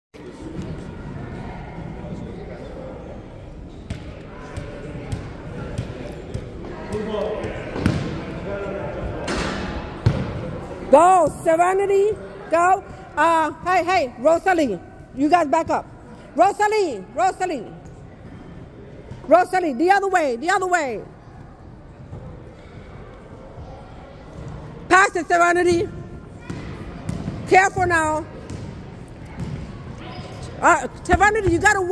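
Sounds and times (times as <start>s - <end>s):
faint murmur of voices: 0.2s - 11.4s, 21.1s - 24.9s
echoing chatter of voices: 0.2s - 31.9s.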